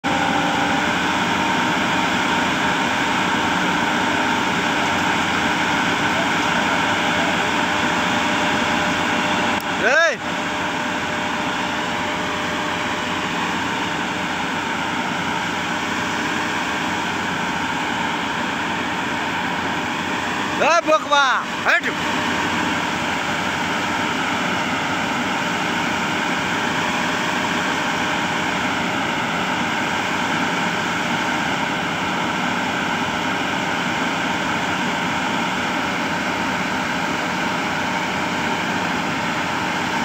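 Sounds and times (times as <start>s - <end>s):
heavy diesel machinery running: 0.0s - 40.0s.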